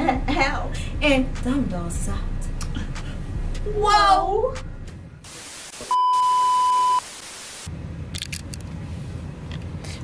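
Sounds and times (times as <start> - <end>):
static hiss: 5.2 - 7.7
loud high test-tone beep: 5.9 - 7.0.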